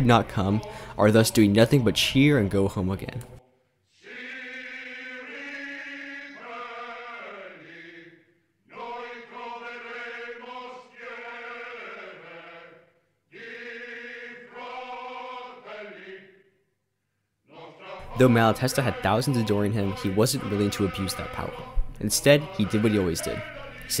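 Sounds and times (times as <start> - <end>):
voices chanting in unison: 0.0 - 2.0, 3.9 - 16.5, 17.5 - 24.0.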